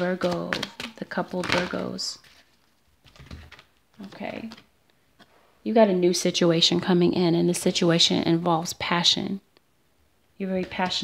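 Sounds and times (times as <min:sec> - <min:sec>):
cards being shuffled: 0:00.0 - 0:04.7.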